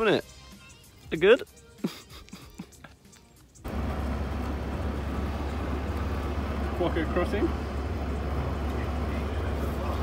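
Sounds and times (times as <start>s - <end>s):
bus engine rumbling: 3.5s - 10.0s.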